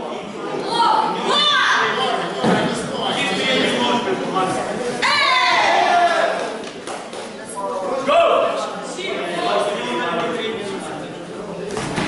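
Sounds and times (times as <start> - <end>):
raised voices in a hall: 0.0 - 12.0.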